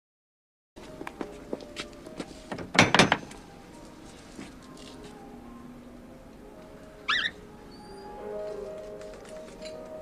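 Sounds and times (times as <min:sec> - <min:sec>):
faint background music: 0:00.8 - 0:10.0.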